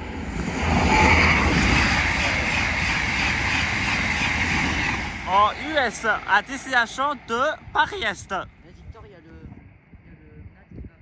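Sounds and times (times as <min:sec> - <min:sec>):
high-speed train passing: 0:00.0 - 0:10.5.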